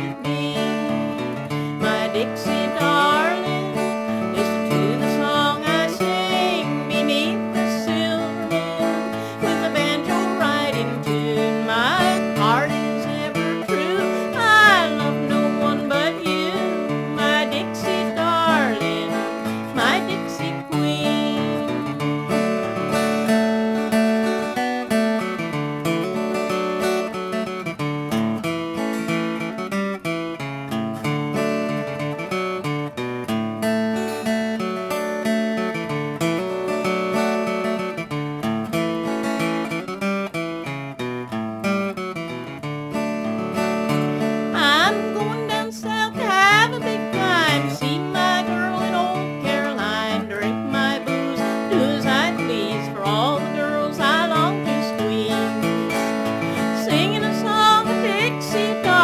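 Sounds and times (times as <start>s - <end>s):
woman singing: 0.0s - 22.5s, 44.2s - 59.0s
acoustic guitar picking: 0.0s - 59.0s.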